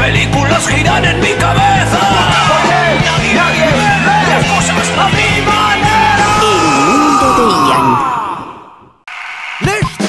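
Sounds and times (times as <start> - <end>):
rock song with vocals: 0.0 - 8.8.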